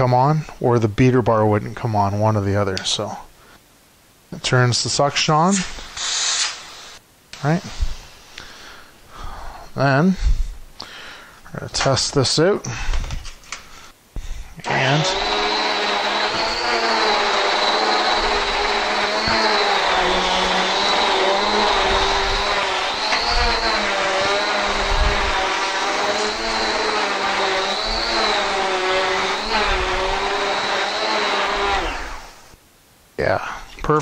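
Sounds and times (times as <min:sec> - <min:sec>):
vacuum cleaner whine: 0:05.8 - 0:08.2, 0:14.6 - 0:32.6.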